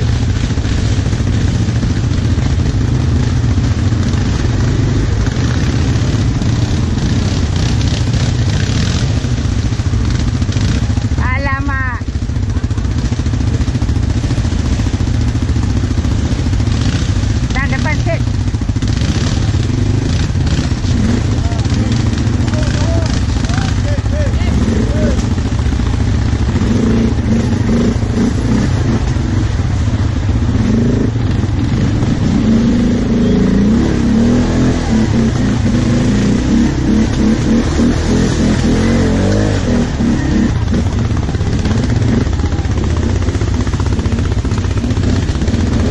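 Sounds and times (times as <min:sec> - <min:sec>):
atv engines running: 0:00.0 - 0:45.9.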